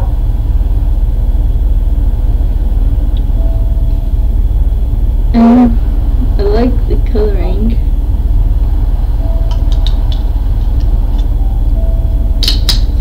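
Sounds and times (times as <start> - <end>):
low rumble: 0.0 - 13.0.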